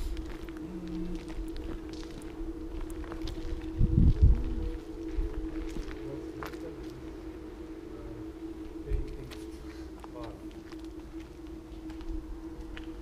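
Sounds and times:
footsteps on concrete: 0.0 - 7.0, 8.9 - 13.0
steady hum: 0.0 - 13.0.

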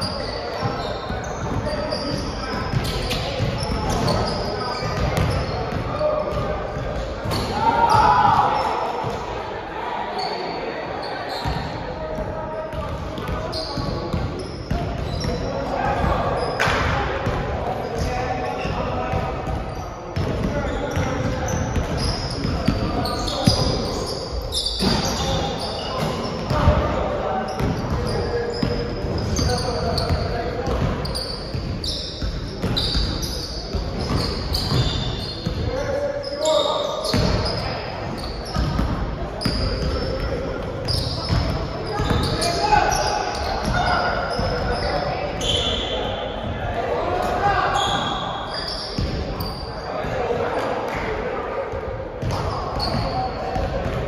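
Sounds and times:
voices echoing in gym: 0.0 - 54.0.

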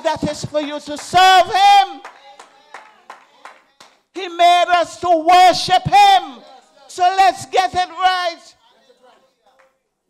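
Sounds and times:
faint hand claps: 0.0 - 1.2, 2.0 - 4.1, 9.5 - 9.9.

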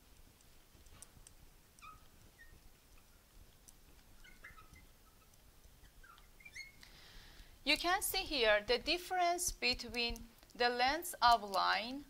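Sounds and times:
marker squeaking on glass: 1.8 - 3.3, 4.0 - 6.9.

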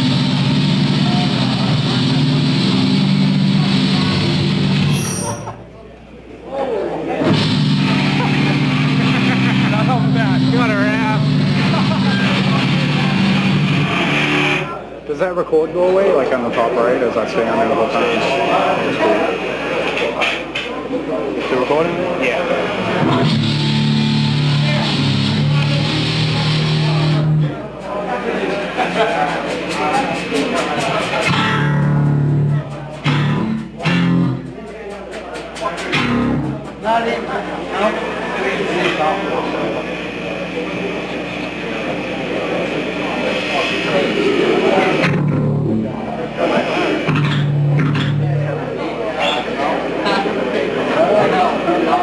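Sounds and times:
electric guitar low note: 0.0 - 5.9, 7.2 - 14.8, 22.6 - 27.7, 31.2 - 34.6, 35.9 - 37.0, 37.8 - 49.5
crowd chatter: 0.0 - 52.0.

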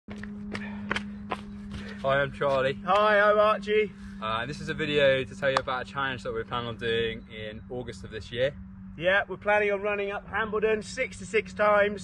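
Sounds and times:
footsteps on tarmac: 0.1 - 3.4
steady low hum: 0.1 - 12.0.

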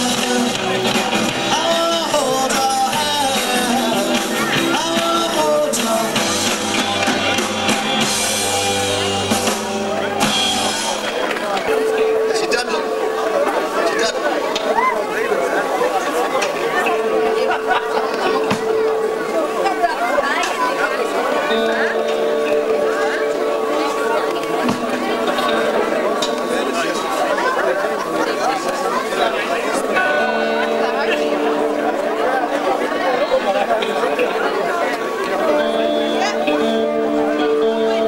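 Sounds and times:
electric guitar: 0.0 - 38.0
live rock band playing: 0.0 - 38.0
people chattering: 0.0 - 38.0.

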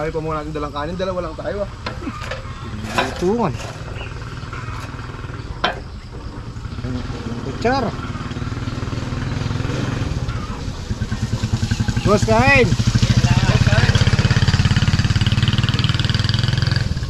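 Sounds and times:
motorcycle engine running: 1.1 - 17.0.

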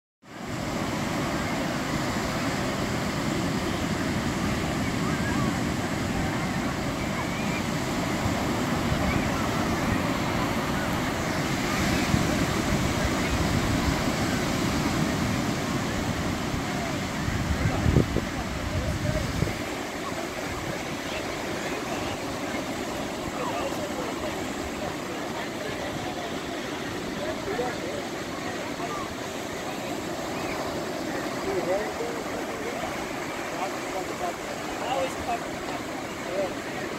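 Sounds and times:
ocean surf on beach: 0.2 - 36.9.

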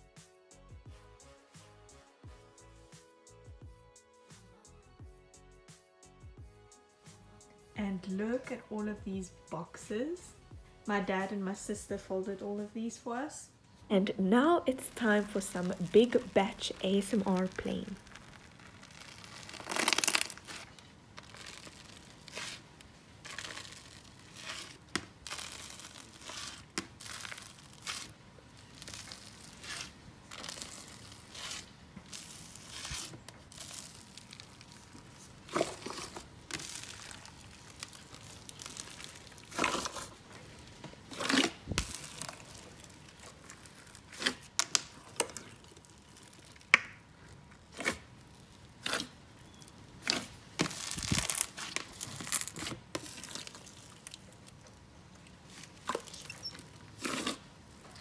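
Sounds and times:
slime crackling and popping: 14.7 - 58.0.

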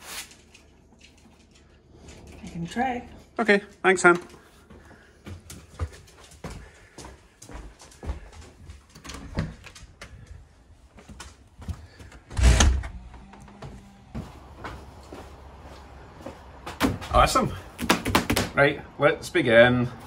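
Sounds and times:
footsteps: 0.9 - 18.3
door opening and shutting: 12.2 - 13.8.

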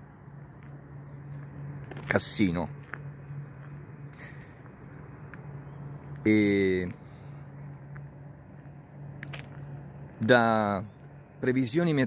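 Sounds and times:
faint steady low hum: 0.0 - 12.0.

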